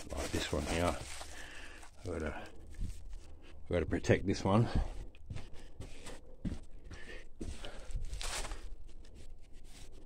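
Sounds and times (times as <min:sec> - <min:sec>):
plastic bags rustling: 0:00.0 - 0:03.1, 0:08.1 - 0:08.7.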